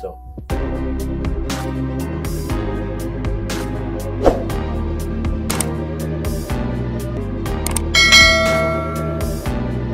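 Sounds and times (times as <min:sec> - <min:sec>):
light background music: 0:00.0 - 0:09.9
notification bell ding: 0:08.0 - 0:09.4.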